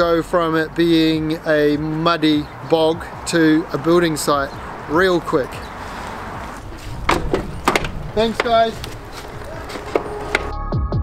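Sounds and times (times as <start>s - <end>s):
steady background noise: 0.0s - 10.5s
sharp knocks and clicks: 7.0s - 10.5s.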